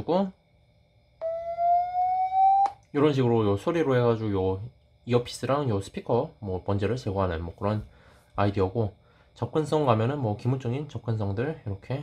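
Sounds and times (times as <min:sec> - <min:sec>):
rising speaker tone: 0:01.2 - 0:02.8.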